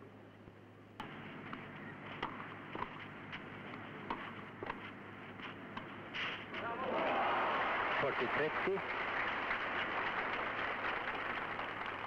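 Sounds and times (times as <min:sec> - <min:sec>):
film soundtrack hiss: 0:00.0 - 0:12.0
tennis ball pops: 0:02.2 - 0:03.0.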